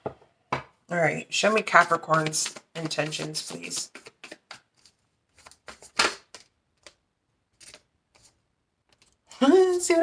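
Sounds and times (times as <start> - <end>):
cards being shuffled: 1.5 - 7.0, 7.6 - 9.2.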